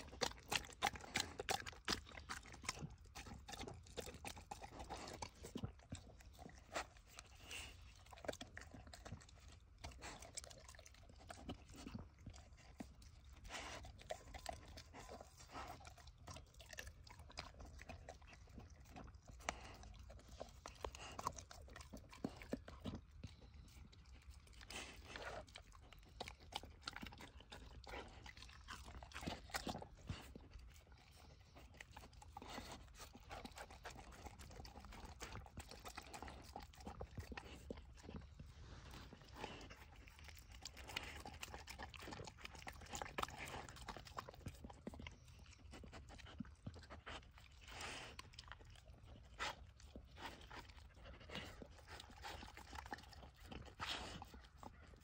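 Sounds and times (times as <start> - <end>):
dog chewing and crunching: 0.0 - 55.0.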